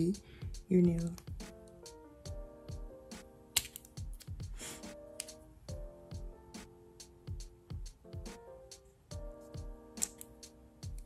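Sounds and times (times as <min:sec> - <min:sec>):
background music with steady beat: 0:00.0 - 0:11.0
scissors snipping plastic: 0:03.6 - 0:04.3.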